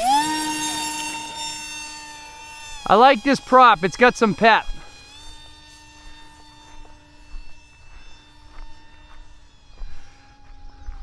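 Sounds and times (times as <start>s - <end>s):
model plane propeller droning: 0.0s - 11.0s.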